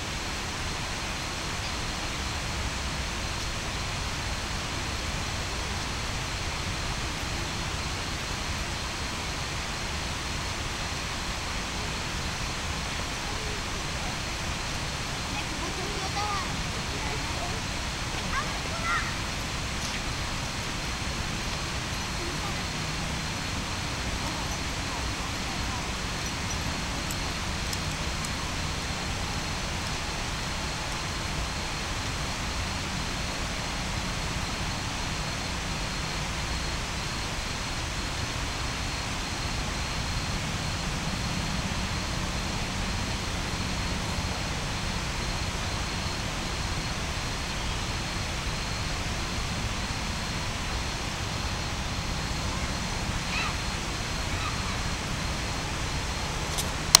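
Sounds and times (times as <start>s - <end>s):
distant traffic hum: 0.0s - 57.0s.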